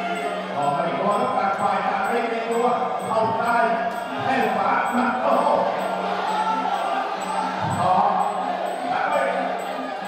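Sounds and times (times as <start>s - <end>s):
crowd voices: 0.0s - 10.0s
drum beats: 0.6s - 9.2s.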